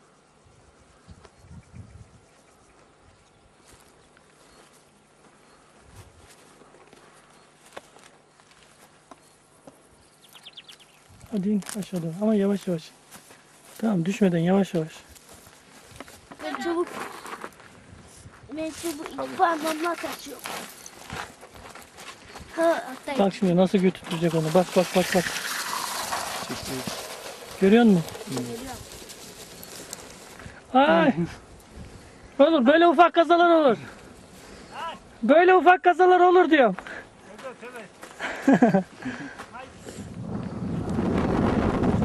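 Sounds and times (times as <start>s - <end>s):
wind buffeting microphone: 1.0s - 2.3s, 39.7s - 42.0s
footsteps scuffing down a slope: 3.6s - 9.8s, 11.4s - 14.0s, 14.8s - 24.9s, 36.7s - 39.6s.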